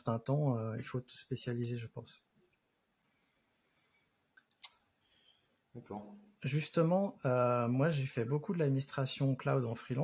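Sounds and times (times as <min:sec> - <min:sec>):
man talking: 0:00.0 - 0:02.3, 0:05.8 - 0:10.0
short sharp clicks: 0:04.4 - 0:04.9.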